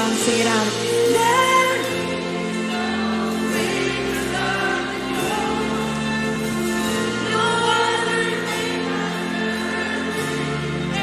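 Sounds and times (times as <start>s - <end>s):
singers holding long notes: 0.0s - 11.0s
worship band playing: 0.0s - 11.0s.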